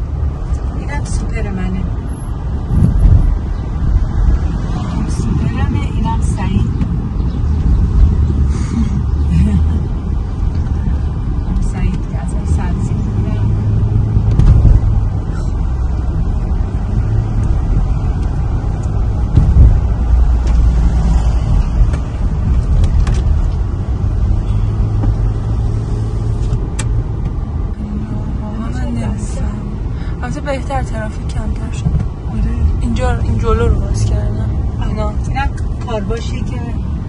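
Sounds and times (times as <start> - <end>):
car engine and tyre rumble: 0.0 - 37.0.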